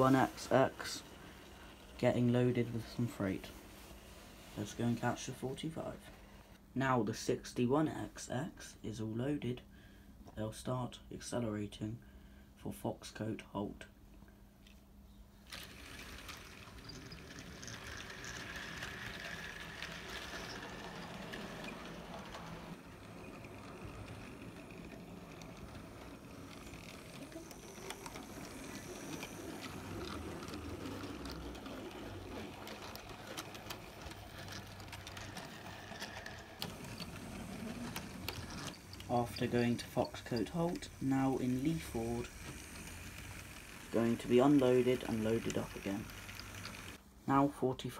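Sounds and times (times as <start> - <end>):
small electric motors whirring: 15.5 - 47.0
wheels clicking over rail joints: 15.5 - 47.0.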